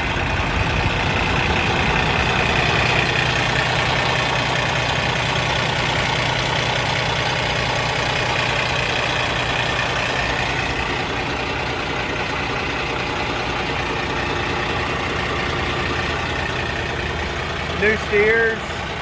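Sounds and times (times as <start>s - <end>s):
diesel engine idling with whine: 0.0s - 19.0s.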